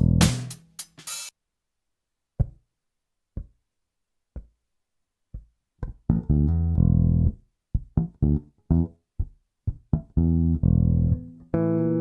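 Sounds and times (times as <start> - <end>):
percussive knocks: 2.4 - 2.6.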